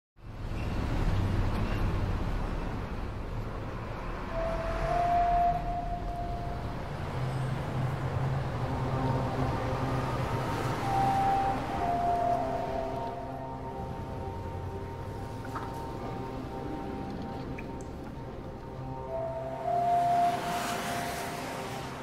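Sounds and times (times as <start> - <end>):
distant city traffic rumble: 0.2 - 22.0
long held tones: 4.3 - 22.0.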